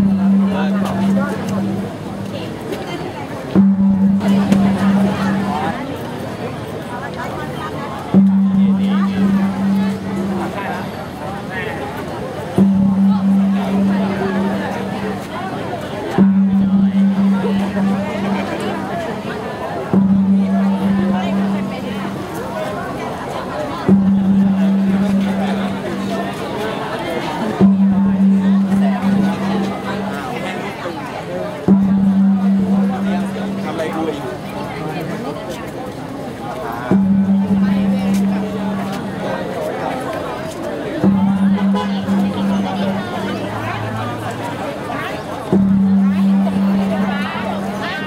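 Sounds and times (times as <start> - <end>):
deep gong struck: 0.0 - 2.4, 3.5 - 5.9, 8.0 - 10.9, 12.5 - 15.3, 15.9 - 22.3, 23.8 - 30.6, 31.6 - 34.3, 36.9 - 39.6, 41.0 - 48.0
crowd chatter: 0.0 - 48.0
steady low held tone: 0.0 - 48.0.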